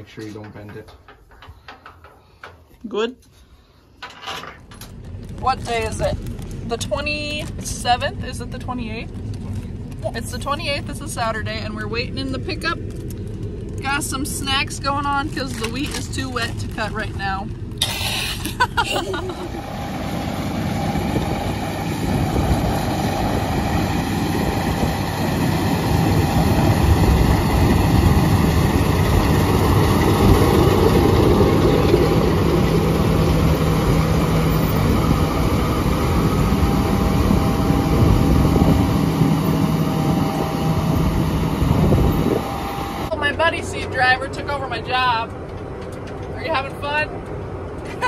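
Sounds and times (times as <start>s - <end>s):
combine harvester drone: 4.6s - 48.0s.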